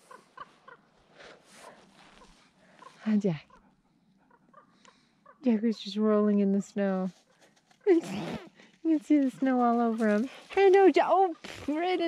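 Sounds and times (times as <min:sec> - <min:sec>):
soft rustle: 0:00.0 - 0:03.7, 0:05.8 - 0:12.0
faint animal calls: 0:00.0 - 0:05.8.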